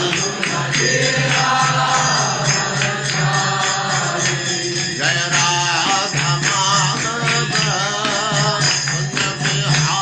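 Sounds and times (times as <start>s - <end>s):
voices chanting a mantra: 0.0s - 10.0s.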